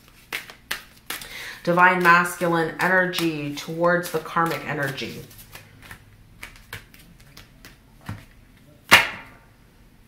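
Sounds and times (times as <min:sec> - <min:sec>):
cards slapping on table: 0:00.1 - 0:02.2, 0:04.1 - 0:08.3
cards clicking: 0:04.2 - 0:07.8.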